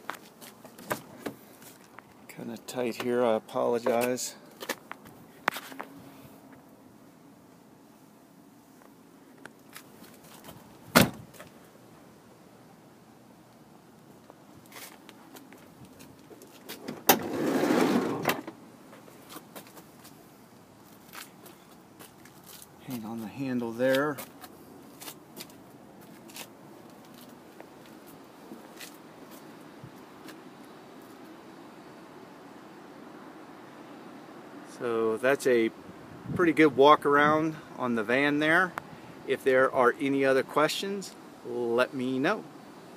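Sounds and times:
low outdoor background hum: 0.0 - 42.9
car door slamming shut: 10.9 - 11.4, 16.8 - 18.6.

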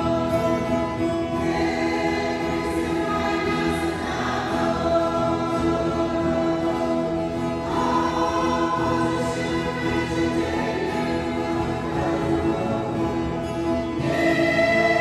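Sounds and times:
mixed choir singing a hymn: 0.0 - 15.0.

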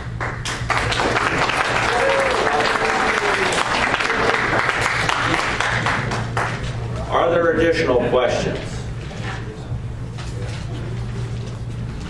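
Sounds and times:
audience clapping: 0.0 - 7.0.

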